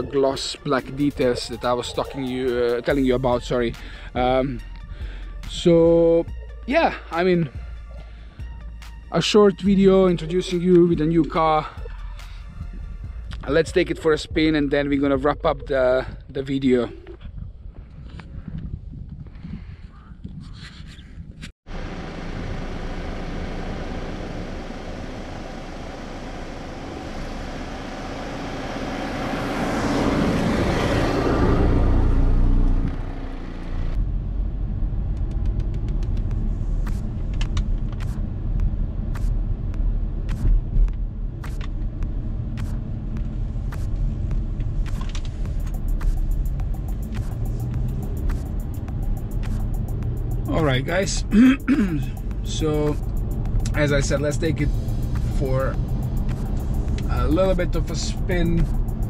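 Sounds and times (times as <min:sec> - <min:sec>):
car engine and road noise: 0:00.0 - 0:19.5, 0:20.5 - 0:59.0
low road rumble in car cabin: 0:07.2 - 0:59.0.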